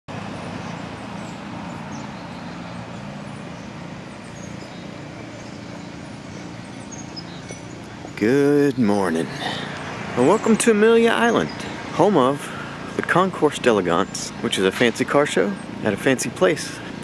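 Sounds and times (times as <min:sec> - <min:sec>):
outdoor background noise: 0:00.1 - 0:17.0
faint high bird chirps: 0:00.6 - 0:08.0.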